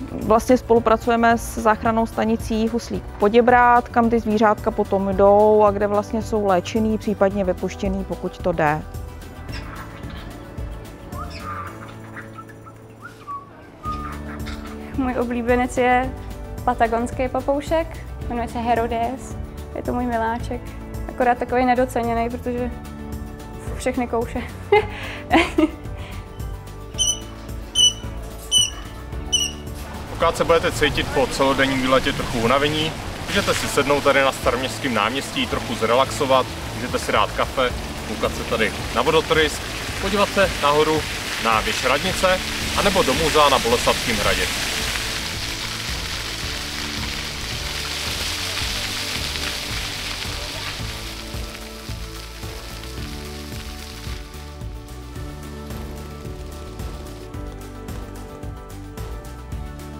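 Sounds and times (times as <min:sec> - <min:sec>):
background music: 0:00.0 - 0:59.9
bird whistled calls: 0:11.2 - 0:14.8, 0:27.0 - 0:29.7
fountain water splashing: 0:27.0 - 0:58.1.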